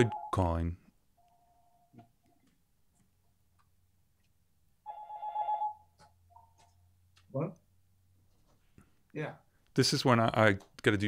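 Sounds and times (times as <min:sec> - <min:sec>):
telephone ringing: 0:00.0 - 0:00.6, 0:01.2 - 0:02.0, 0:04.9 - 0:06.6.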